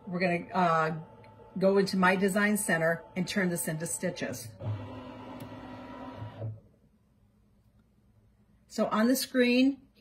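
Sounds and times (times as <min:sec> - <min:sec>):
embroidery machine motor whir: 0:04.5 - 0:06.6.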